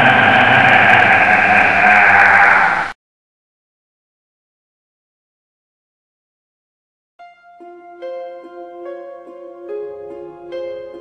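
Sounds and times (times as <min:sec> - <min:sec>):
harsh growling roar: 0:00.0 - 0:03.0.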